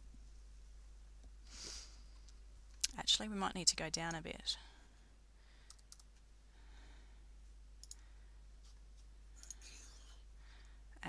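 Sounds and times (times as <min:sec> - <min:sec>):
computer mouse clicks: 0:05.7 - 0:06.2, 0:07.8 - 0:08.0, 0:09.4 - 0:10.0.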